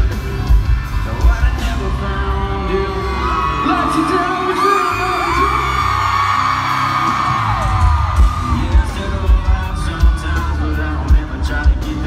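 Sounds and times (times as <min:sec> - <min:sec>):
live band playing: 0:00.0 - 0:12.0
steady bass: 0:00.0 - 0:12.0
fans whooping and yelling: 0:01.0 - 0:12.0.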